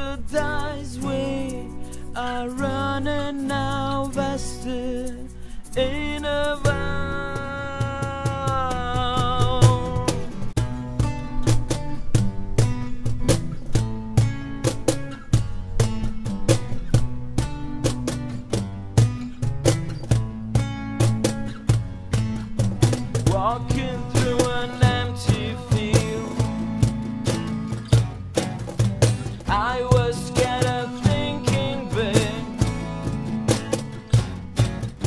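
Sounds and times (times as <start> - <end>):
bass guitar: 0.0 - 35.0
cajon beat: 0.0 - 35.0
strummed acoustic guitars: 0.0 - 35.0.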